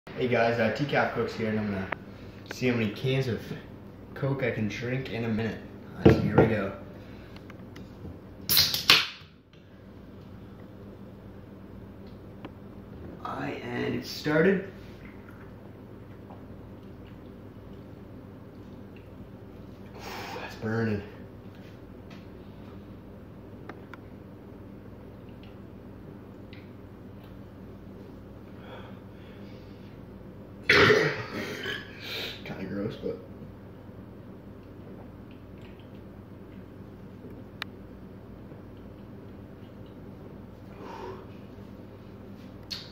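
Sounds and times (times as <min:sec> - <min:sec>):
can cracked open hissing: 0:08.5 - 0:09.2
loud burp: 0:30.7 - 0:31.9.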